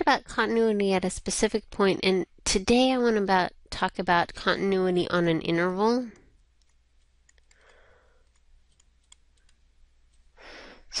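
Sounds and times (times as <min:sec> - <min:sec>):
person breathing: 0:07.4 - 0:08.4, 0:10.4 - 0:11.0.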